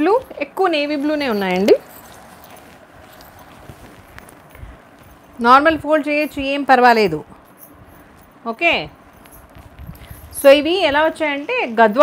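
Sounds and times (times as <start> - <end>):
cloth rustling: 0.0 - 12.0.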